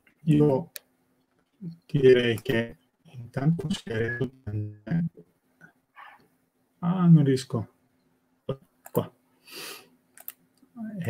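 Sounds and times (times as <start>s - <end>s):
man speaking over video call: 0.2s - 0.8s, 1.6s - 5.2s, 6.8s - 7.7s.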